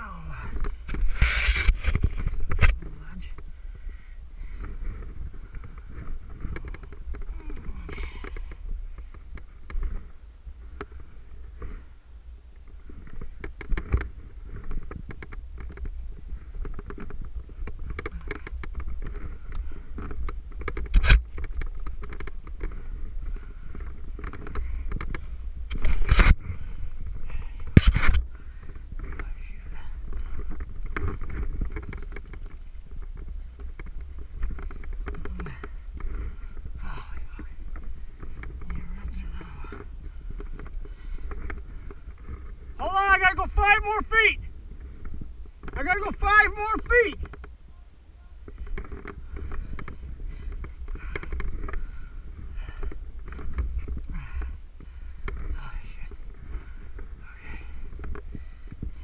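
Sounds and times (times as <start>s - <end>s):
hands scraping rock: 0.0s - 3.4s, 12.7s - 43.2s
wind rumble on microphone: 0.0s - 59.0s.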